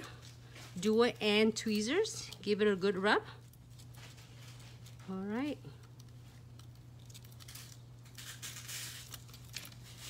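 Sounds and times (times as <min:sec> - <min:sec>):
steady low hum: 0:00.0 - 0:10.0
scratchy rubbing of foil: 0:06.5 - 0:10.0.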